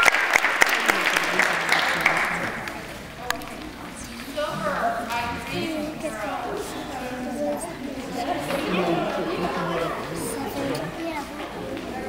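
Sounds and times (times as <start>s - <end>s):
girls chattering: 2.5s - 12.0s.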